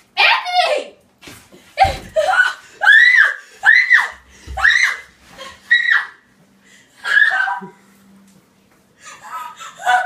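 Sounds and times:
woman screaming: 7.0s - 7.7s.

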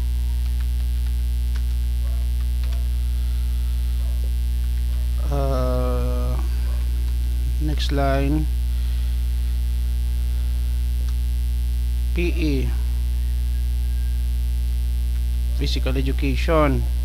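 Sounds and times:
electrical mains hum: 0.0s - 17.0s
person saying uh: 5.2s - 6.7s, 12.2s - 12.9s.

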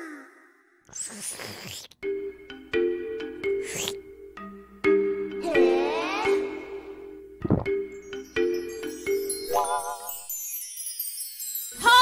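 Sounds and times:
musical sound effect tones: 2.0s - 10.5s.

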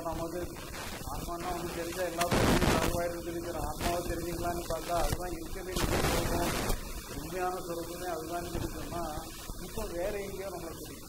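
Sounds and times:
microphone pops: 0.0s - 7.2s
man talking into microphone: 0.0s - 11.0s.

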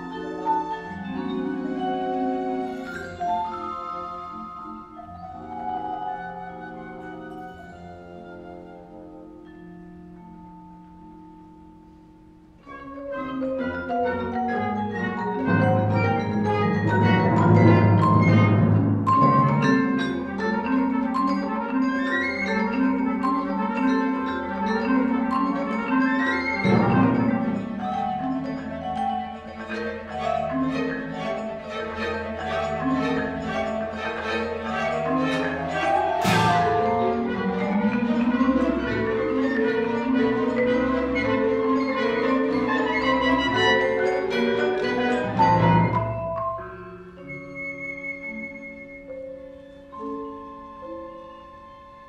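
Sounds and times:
string orchestra chords: 0.0s - 10.5s, 12.5s - 47.4s
marimba and vibraphone runs: 0.0s - 52.0s.

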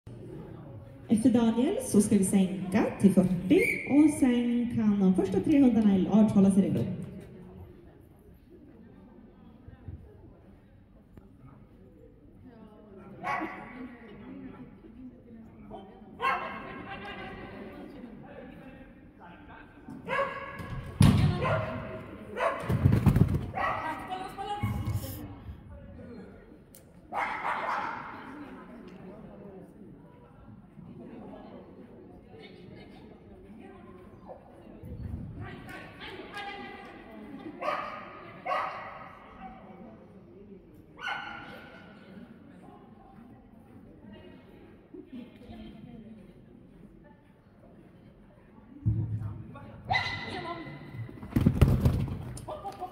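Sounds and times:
dog barking in a hall: 13.1s - 13.9s, 15.7s - 16.9s, 20.0s - 22.9s, 23.5s - 24.2s, 27.1s - 28.5s, 37.5s - 39.9s, 41.0s - 42.1s, 49.9s - 50.9s
dog barking: 16.2s - 16.6s, 20.1s - 20.6s, 22.4s - 22.7s, 27.1s - 28.1s, 37.6s - 39.0s.

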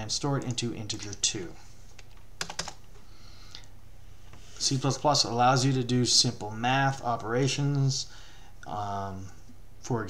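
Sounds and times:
computer keyboard keystrokes: 2.0s - 2.8s.

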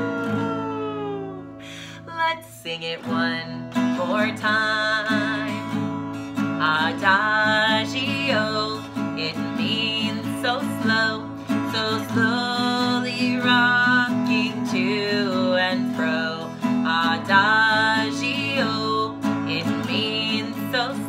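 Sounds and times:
woman singing children's song: 0.0s - 5.8s, 6.5s - 21.0s
acoustic guitar strumming: 0.0s - 21.0s.

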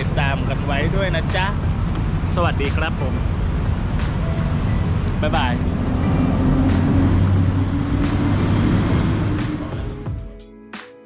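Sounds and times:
road traffic rumble: 0.0s - 10.3s
light ticking beat: 0.0s - 10.6s
background music: 0.0s - 11.0s.

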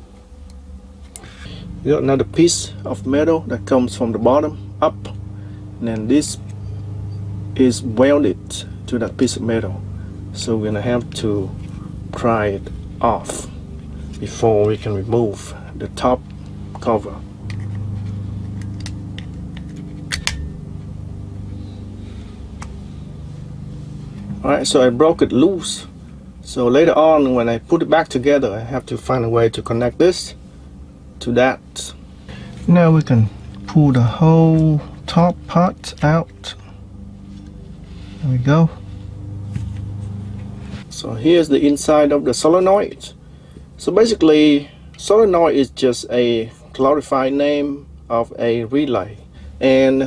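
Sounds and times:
steady low hum: 0.0s - 50.0s
pry tool clicking and scraping metal: 19.6s - 20.6s.

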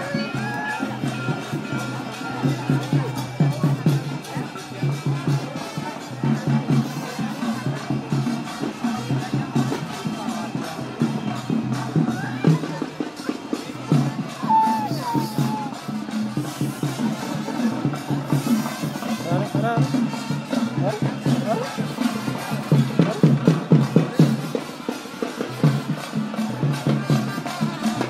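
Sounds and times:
crowd voices: 0.0s - 28.0s
rhythmic drumming and percussion: 0.0s - 28.0s.

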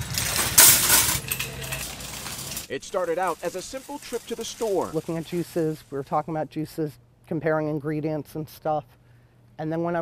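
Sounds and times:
wire shopping cart rattling: 0.0s - 6.0s.

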